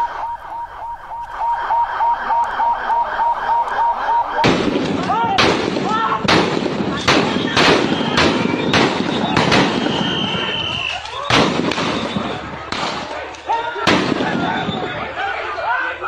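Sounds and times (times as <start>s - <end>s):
voices calling out: 0.0s - 16.0s
loud sharp bangs: 2.9s - 15.5s.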